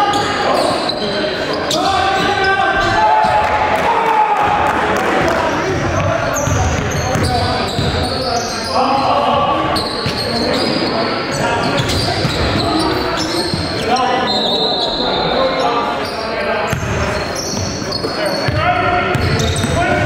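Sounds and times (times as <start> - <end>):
players calling out: 0.0 - 20.0.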